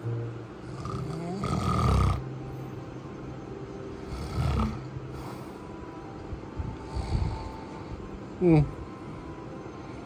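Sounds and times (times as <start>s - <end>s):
man snoring: 0.6s - 2.3s, 4.0s - 4.9s, 6.9s - 7.6s.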